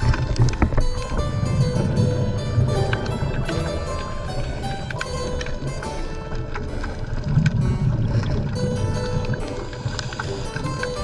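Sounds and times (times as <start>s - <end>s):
underwater bubbles rumble: 0.0s - 11.0s.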